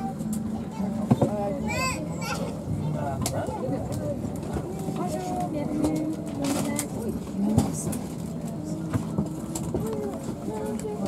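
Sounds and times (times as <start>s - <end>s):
chatter of passengers' voices: 0.0s - 11.0s.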